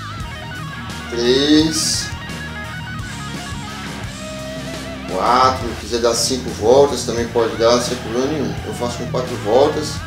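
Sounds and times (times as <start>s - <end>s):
guitar music: 0.0s - 10.0s.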